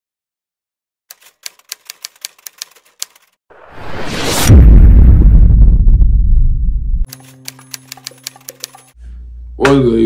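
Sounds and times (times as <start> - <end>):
typewriter keystroke clicks: 1.1 - 3.3, 7.1 - 9.0
rising whoosh: 3.5 - 7.0.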